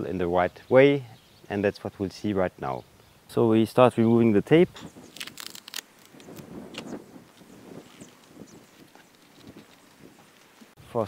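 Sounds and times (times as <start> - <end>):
tape peeling rustle: 4.7 - 10.8.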